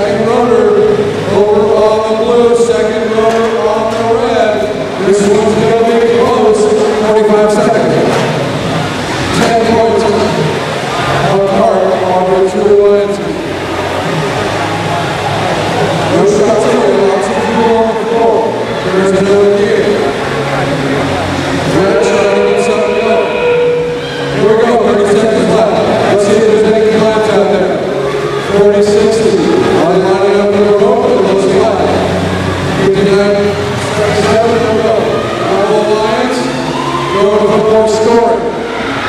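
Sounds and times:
man announcing over public address: 0:00.0 - 0:08.5, 0:09.3 - 0:13.5, 0:16.1 - 0:21.0, 0:21.6 - 0:38.8
arena crowd noise: 0:00.0 - 0:39.0
hall background noise: 0:00.0 - 0:39.0.

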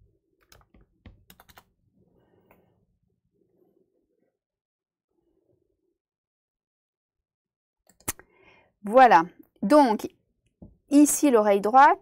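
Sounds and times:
faint computer keyboard typing: 0:00.4 - 0:01.7.

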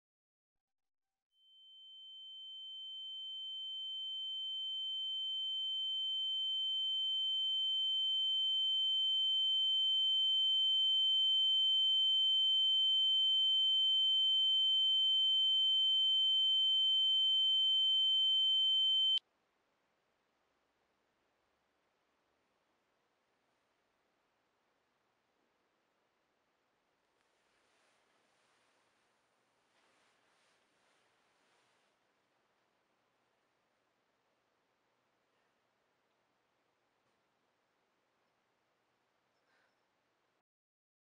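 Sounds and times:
high-pitched electronic ringing tone: 0:01.4 - 0:19.2.

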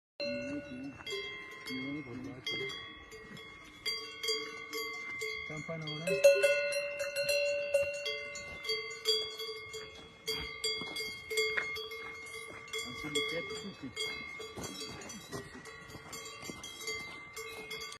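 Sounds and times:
cowbell clanking: 0:00.2 - 0:18.0.

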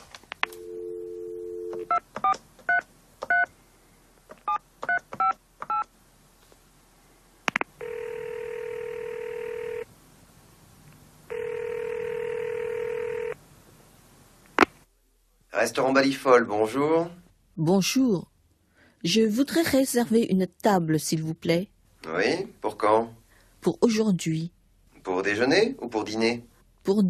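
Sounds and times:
telephone dial tone: 0:00.5 - 0:03.5, 0:07.8 - 0:09.9, 0:11.3 - 0:13.4
telephone ringing tone: 0:00.6 - 0:02.0, 0:07.8 - 0:09.9, 0:11.3 - 0:13.4
keypad beeps: 0:01.6 - 0:03.5, 0:04.5 - 0:05.9.

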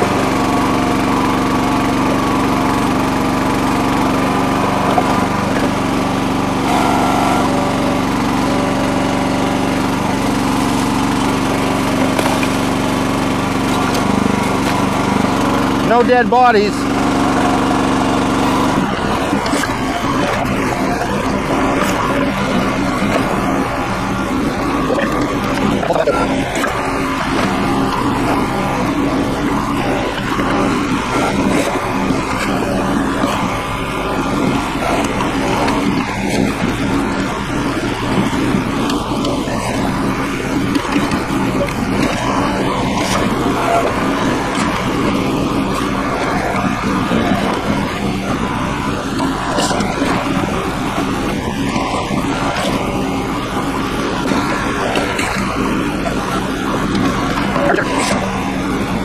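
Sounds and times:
bucket digging in mud and rock: 0:00.0 - 0:59.0
small gas engine running: 0:00.0 - 0:59.0.

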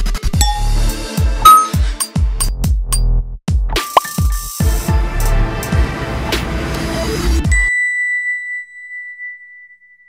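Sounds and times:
high clear ding: 0:00.4 - 0:01.9
electronic music with a beat: 0:00.4 - 0:02.5.

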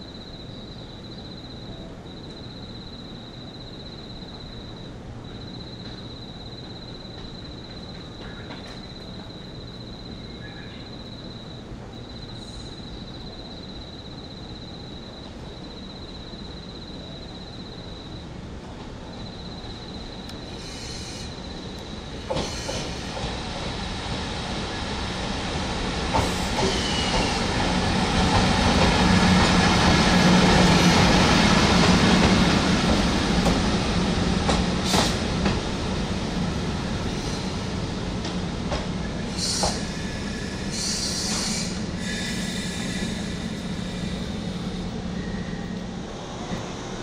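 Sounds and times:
electric locomotive hum: 0:00.0 - 0:47.0.

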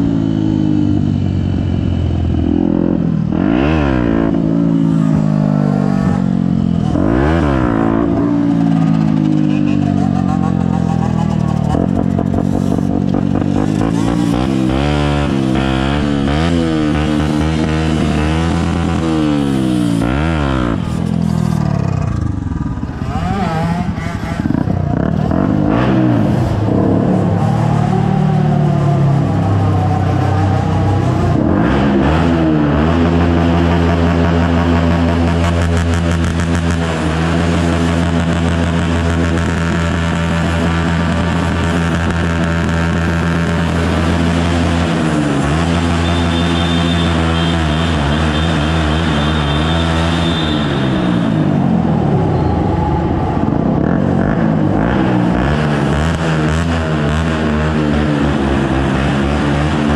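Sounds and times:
motorcycle engines revving: 0:00.0 - 0:59.9.

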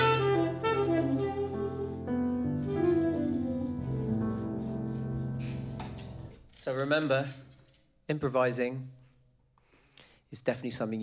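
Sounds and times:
tenor saxophone with band: 0:00.0 - 0:05.6.

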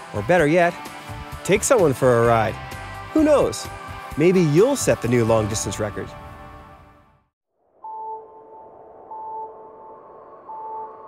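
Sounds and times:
electronic pings: 0:07.8 - 0:11.0.

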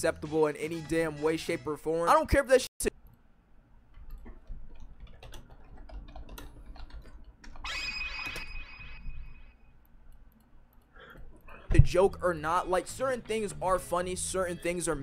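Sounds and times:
computer keyboard typing: 0:04.0 - 0:07.7.

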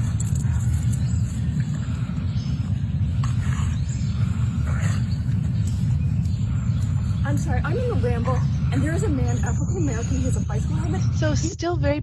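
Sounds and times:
low rumble on microphone: 0:00.0 - 0:12.0.

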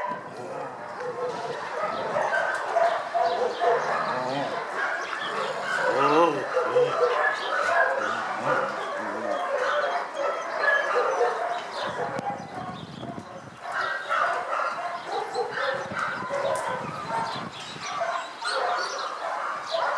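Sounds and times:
dogs barking and yipping: 0:00.0 - 0:19.9.

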